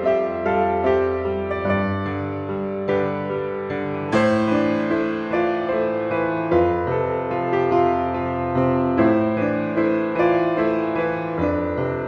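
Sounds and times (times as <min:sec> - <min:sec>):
solo piano music: 0:00.0 - 0:12.0.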